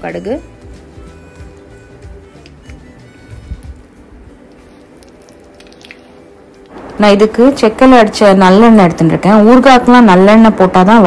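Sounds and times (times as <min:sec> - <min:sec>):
soft background music: 0:00.0 - 0:11.0
hot oil bubbling and crackling: 0:04.8 - 0:07.0.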